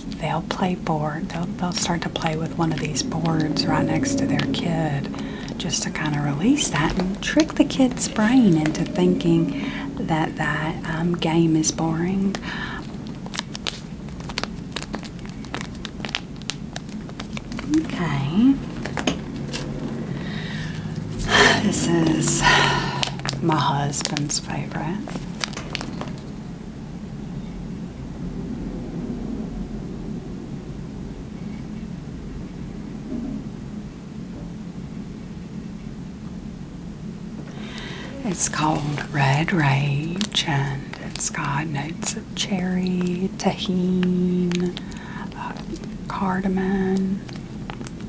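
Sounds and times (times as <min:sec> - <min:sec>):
low background rumble: 0:00.0 - 0:48.0.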